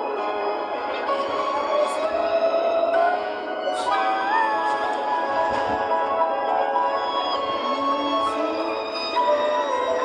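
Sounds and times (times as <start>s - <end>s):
violin melody: 0.0s - 10.0s.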